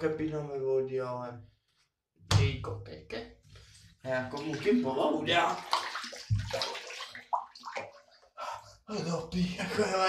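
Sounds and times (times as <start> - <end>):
water sloshing in a bathtub: 3.4 - 8.6.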